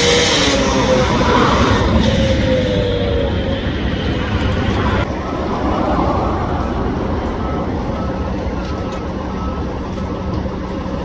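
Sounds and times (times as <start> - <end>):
heavy equipment engine rumble: 0.0 - 11.0
faint repeating beep: 7.4 - 9.7.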